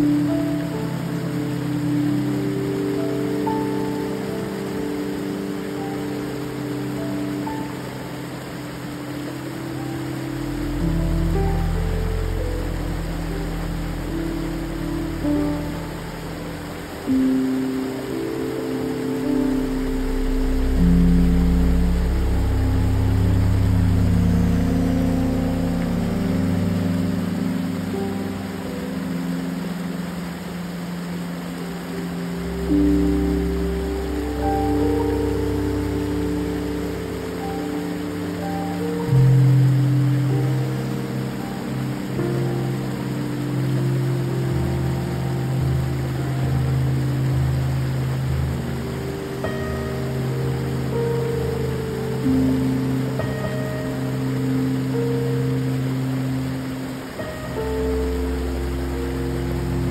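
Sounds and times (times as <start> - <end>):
creek water cascading over rock: 0.0 - 59.9
slow ambient music: 0.0 - 59.9
deep bass: 19.3 - 27.4.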